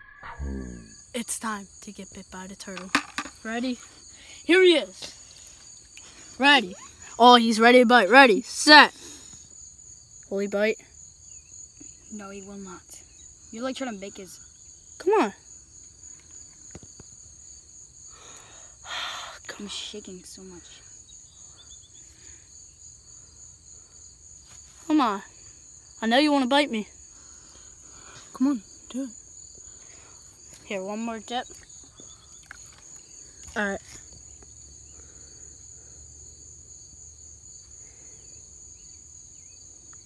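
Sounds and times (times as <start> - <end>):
low rumble: 0.0 - 1.0
high-pitched insect chorus: 0.3 - 40.0.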